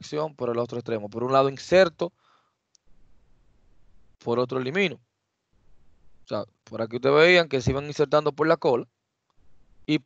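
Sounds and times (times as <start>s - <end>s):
low background hiss: 0.0s - 10.0s
faint click: 2.7s - 2.9s.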